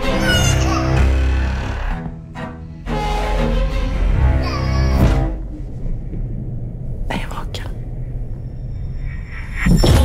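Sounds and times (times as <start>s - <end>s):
person whispering: 7.1s - 7.9s.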